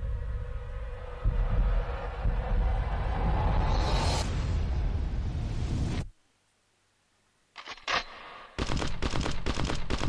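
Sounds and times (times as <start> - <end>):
deep steady rumble: 0.0 - 6.1
hissing whoosh: 1.6 - 6.1.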